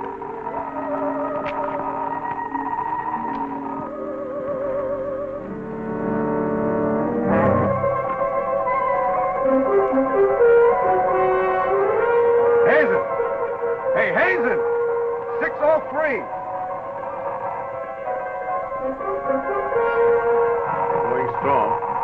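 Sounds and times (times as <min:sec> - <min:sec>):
sustained brass chords: 0:05.4 - 0:22.0.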